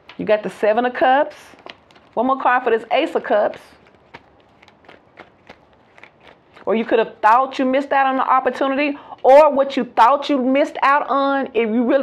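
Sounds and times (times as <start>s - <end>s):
cards being shuffled: 1.4s - 7.1s.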